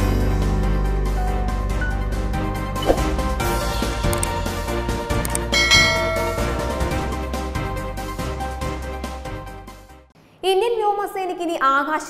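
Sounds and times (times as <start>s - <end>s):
background music: 0.0s - 10.1s
quick clicks: 4.1s - 4.4s, 5.2s - 5.5s
bell-like ding: 5.6s - 7.1s.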